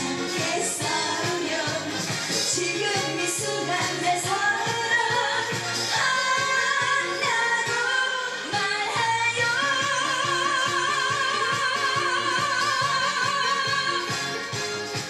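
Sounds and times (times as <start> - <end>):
woman singing into microphone: 0.0 - 14.5
backing track with steady beat: 0.0 - 15.0.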